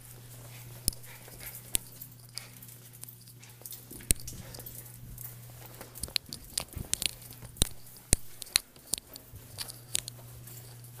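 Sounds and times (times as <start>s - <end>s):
steady low hum: 0.0s - 11.0s
dog claws clicking on hard floor: 0.4s - 11.0s.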